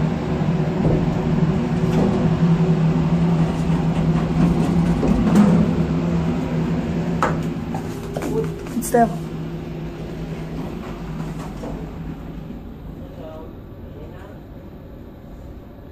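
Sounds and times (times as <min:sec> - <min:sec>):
elevator humming: 0:00.0 - 0:15.9.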